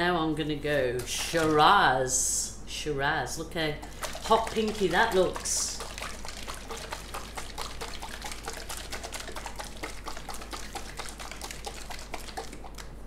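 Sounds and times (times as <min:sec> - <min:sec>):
thick paint pouring and dripping: 0:03.8 - 0:13.0.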